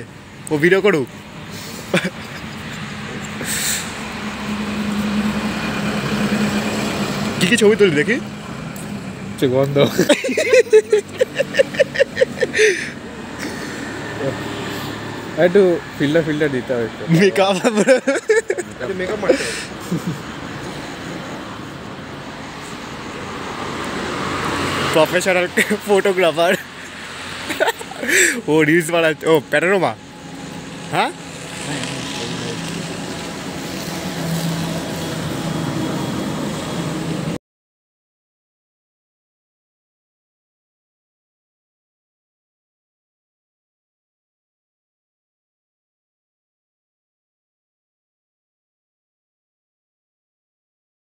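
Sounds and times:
road traffic rush: 0.0s - 37.4s
person laughing: 1.7s - 3.6s, 9.8s - 13.7s, 17.1s - 20.4s, 25.5s - 28.5s.

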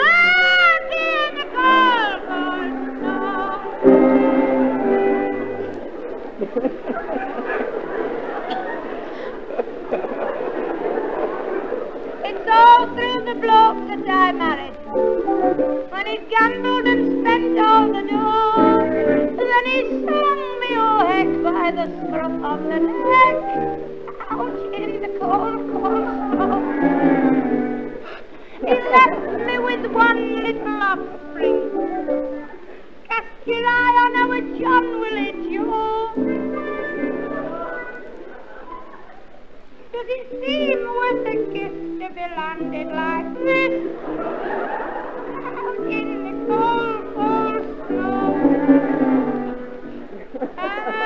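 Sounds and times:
woman singing with vibrato: 0.0s - 5.7s, 12.2s - 28.0s, 28.6s - 32.1s, 33.1s - 38.1s, 39.9s - 44.1s, 45.2s - 49.8s, 50.6s - 51.0s
instrumental accompaniment: 0.0s - 8.8s, 9.8s - 39.5s, 40.2s - 51.0s
audience voices: 0.0s - 51.0s.

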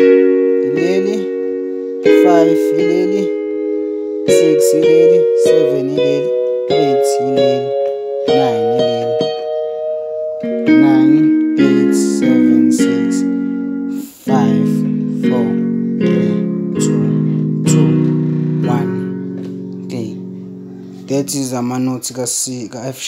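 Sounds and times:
keyboard notes and chords: 0.0s - 22.8s.

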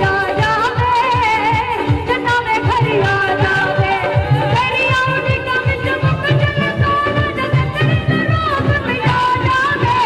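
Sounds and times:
keyboards: 0.0s - 10.0s
low drum beat: 0.0s - 10.0s
woman singing into microphone: 0.0s - 10.0s.

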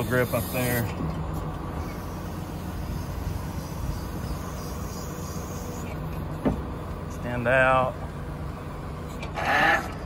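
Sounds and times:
diesel truck engine running: 0.0s - 10.0s.

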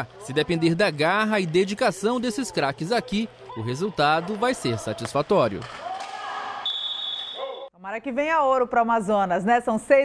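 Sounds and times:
indoor court ambience: 0.0s - 7.7s
high steady whistle blast: 6.6s - 7.7s.

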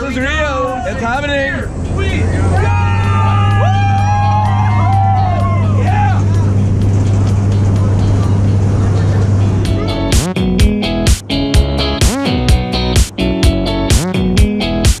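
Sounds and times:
passenger shouting: 0.0s - 10.5s
strummed guitar music: 3.0s - 15.0s
small plane engine and propeller drone: 6.1s - 9.9s.

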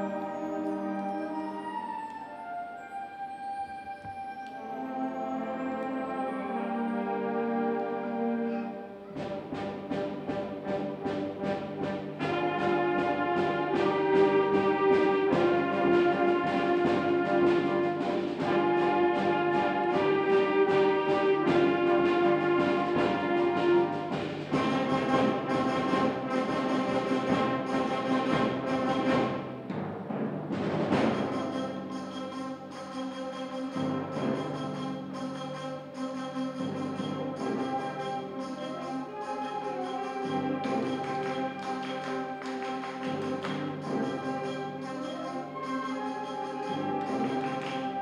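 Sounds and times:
timpani: 0.0s - 48.0s
concert band playing: 9.0s - 32.7s, 35.8s - 48.0s.

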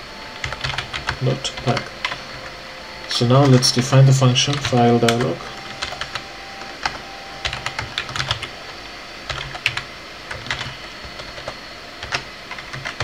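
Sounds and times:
typing on computer keyboard: 0.4s - 2.4s, 4.5s - 8.5s, 9.3s - 13.0s.

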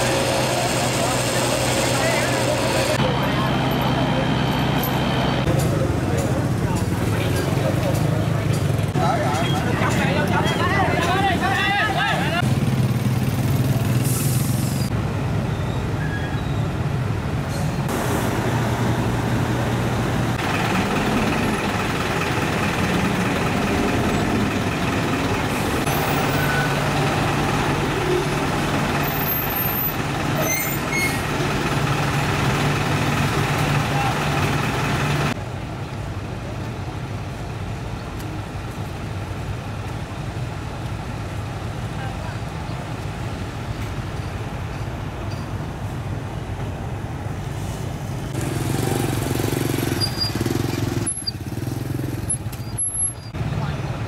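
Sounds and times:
truck engines idling: 0.0s - 15.4s, 16.8s - 54.0s.

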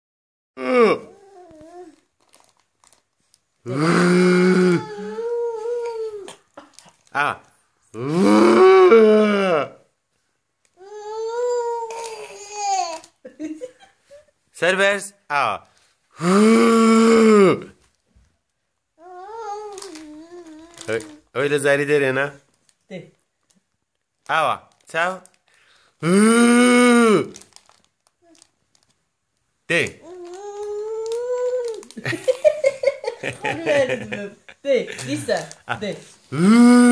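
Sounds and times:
child holding long vocal note: 3.7s - 6.3s
person shouting aah: 36.4s - 36.9s.

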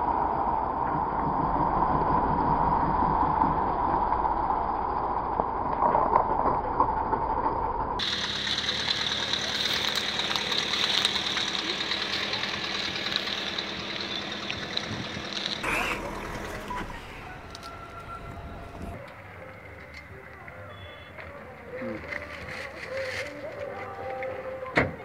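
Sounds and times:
car engine idling: 8.0s - 20.3s
thin engine hum: 8.0s - 23.3s
constant high tone: 15.6s - 22.6s.

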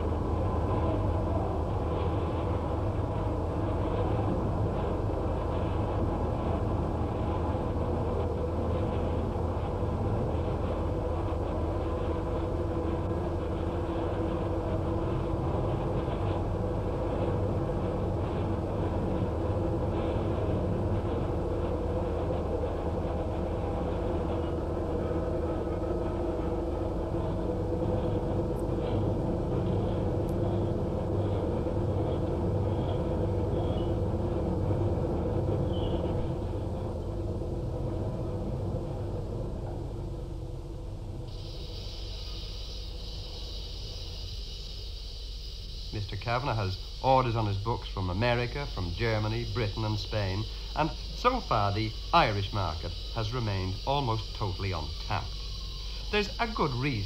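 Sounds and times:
high-pitched hiss: 41.3s - 57.0s.

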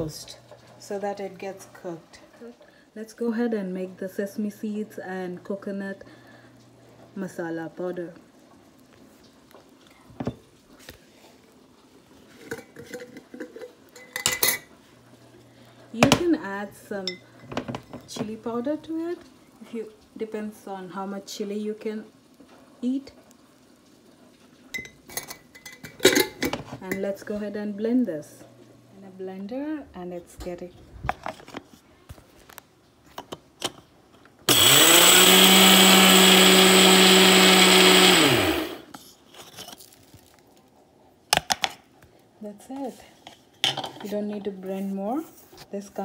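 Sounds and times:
dishes and utensils clinking: 12.3s - 14.7s, 24.7s - 27.1s.

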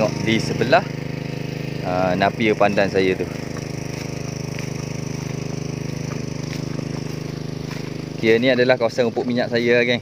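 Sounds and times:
engine-driven water pump running: 0.0s - 10.0s.

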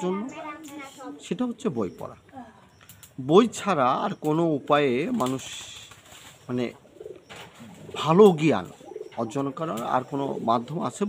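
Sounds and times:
dove cooing: 4.0s - 11.0s.

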